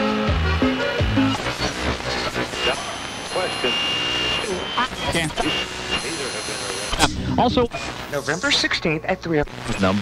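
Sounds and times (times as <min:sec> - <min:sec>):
steady high radio whistle: 0:00.8 - 0:08.7
garbled radio speech: 0:01.2 - 0:10.0.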